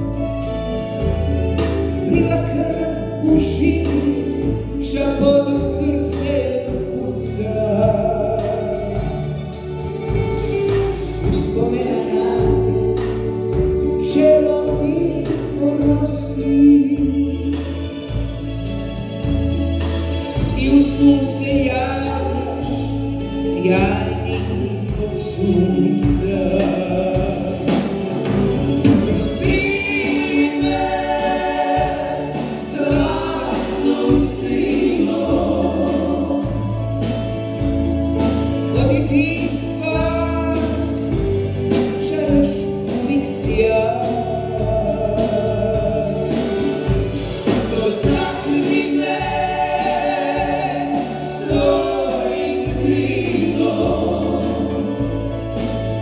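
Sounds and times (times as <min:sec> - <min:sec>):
acoustic guitar: 0:00.0 - 0:56.0
backing vocalists harmonizing: 0:00.0 - 0:56.0
bass notes: 0:00.0 - 0:56.0
drums: 0:00.0 - 0:56.0
keyboards: 0:00.0 - 0:56.0
voices singing together: 0:28.7 - 0:37.3, 0:44.0 - 0:56.0.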